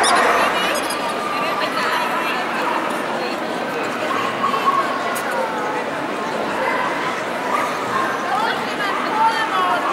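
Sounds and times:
crowd chatter: 0.0 - 9.9.

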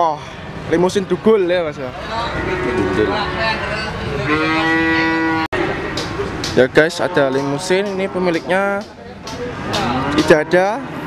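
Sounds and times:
cow mooing: 2.2 - 5.9, 9.8 - 10.9.

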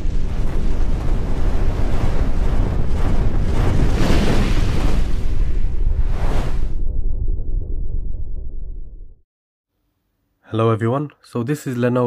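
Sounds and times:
deep rumble with rushing swell: 5.5 - 9.2.

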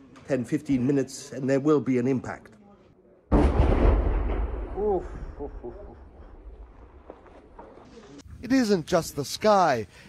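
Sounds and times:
artillery shell explosion: 3.3 - 7.1.

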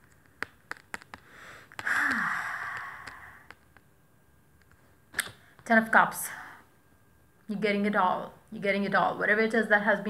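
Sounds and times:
cards clicking: 0.0 - 2.0
woman sighing: 1.4 - 3.5.

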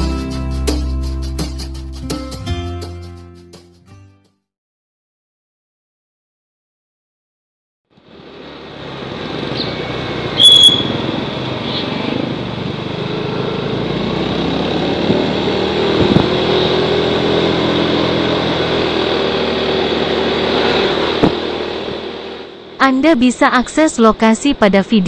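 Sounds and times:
road and wind noise: 7.9 - 25.0
motorcycle engine running: 8.0 - 22.8
sharp high-pitched sound: 10.4 - 11.0.

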